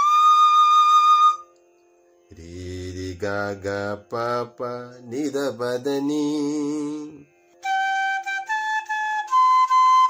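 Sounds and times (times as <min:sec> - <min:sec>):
man singing low: 0:02.3 - 0:07.2.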